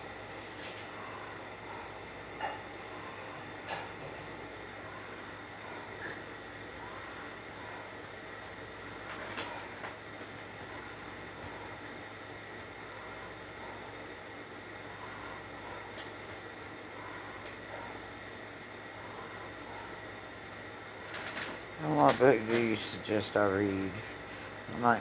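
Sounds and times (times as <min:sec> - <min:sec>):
radio static hiss: 0:00.0 - 0:25.0.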